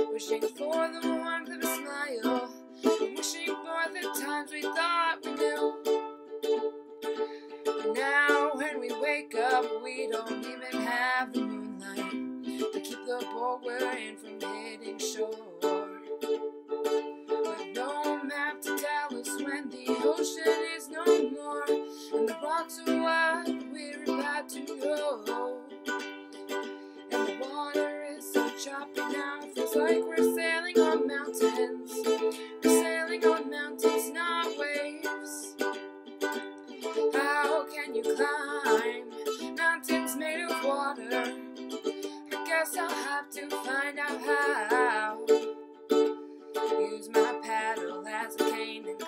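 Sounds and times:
ukulele strumming: 0:00.0 - 0:49.0.

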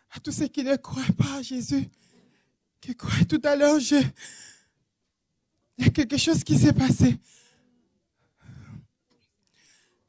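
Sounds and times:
person speaking: 0:00.0 - 0:02.0, 0:02.8 - 0:04.2, 0:05.7 - 0:07.2
faint breath on microphone: 0:01.9 - 0:02.6, 0:07.2 - 0:08.9, 0:09.5 - 0:10.0.

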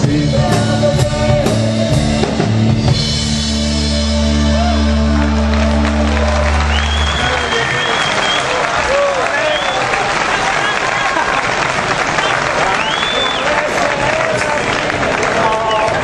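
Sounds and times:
rock band chord: 0:00.0 - 0:07.0
crowd applauding and cheering: 0:03.8 - 0:16.0
crowd whistling and shouting: 0:03.9 - 0:16.0.

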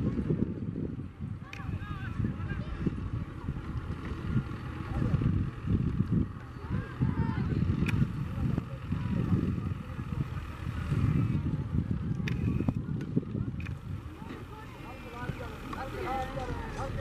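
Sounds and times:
distant voices: 0:00.0 - 0:17.0
wind rumbling on microphone: 0:00.0 - 0:17.0.

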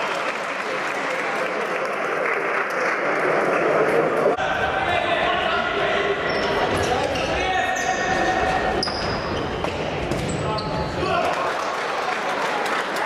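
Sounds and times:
shoes squeaking on floor: 0:06.3 - 0:11.0.

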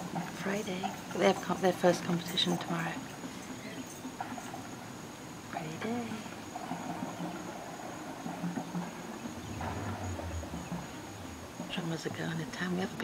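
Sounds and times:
insect trill: 0:00.4 - 0:13.0
marching band low notes: 0:09.3 - 0:11.7.

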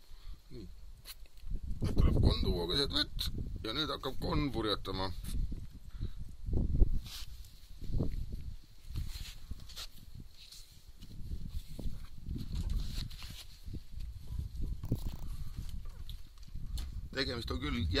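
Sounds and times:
wind buffeting microphone: 0:01.4 - 0:18.0.

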